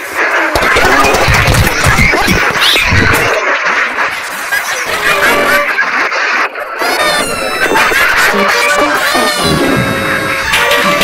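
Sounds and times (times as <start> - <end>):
music: 4.8 - 5.8, 6.6 - 11.0
squeaky cartoon cat voices: 7.0 - 10.5.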